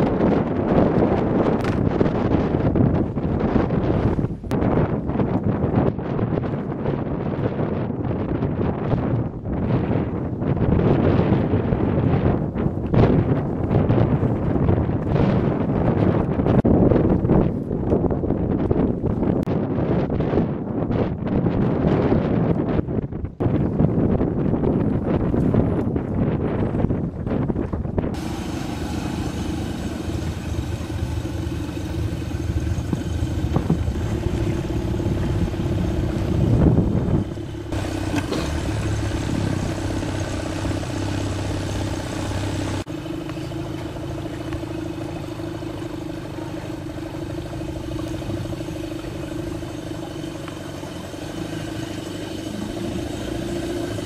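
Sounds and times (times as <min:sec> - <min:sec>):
boat engine droning: 0:28.2 - 0:54.0.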